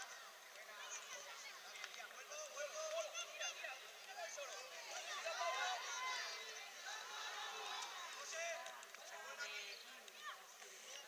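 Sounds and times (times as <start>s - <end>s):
children shouting and calling: 0.0s - 11.0s.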